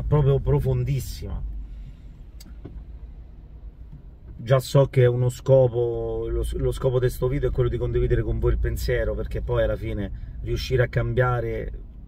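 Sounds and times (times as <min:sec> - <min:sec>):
car rumble from inside cabin: 0:00.0 - 0:12.0
faint click: 0:02.4 - 0:02.8.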